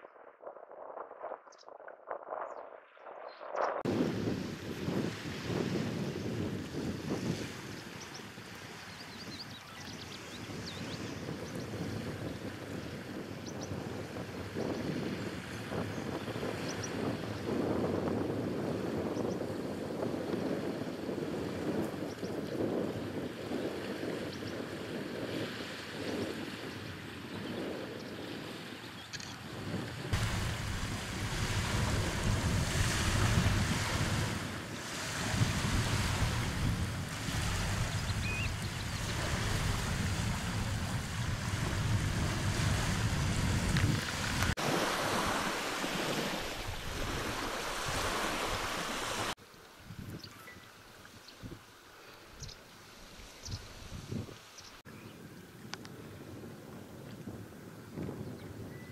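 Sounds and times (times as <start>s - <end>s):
wind buffeting microphone: 0.0s - 50.4s, 53.4s - 58.9s
choppy open sea: 0.0s - 58.9s
small waves washing on shore: 3.8s - 50.0s.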